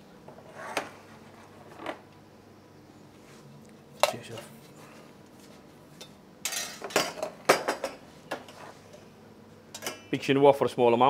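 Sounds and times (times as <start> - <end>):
metal pans clanking: 6.5 - 8.6, 9.7 - 10.1.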